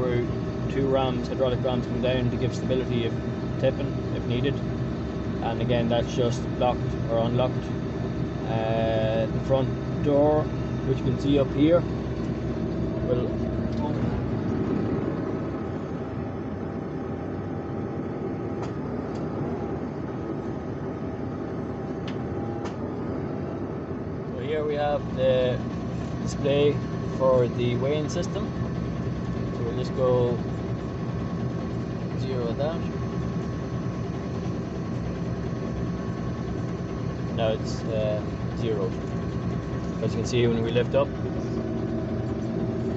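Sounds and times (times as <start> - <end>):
tractor engine running: 0.0 - 16.6, 24.4 - 42.9.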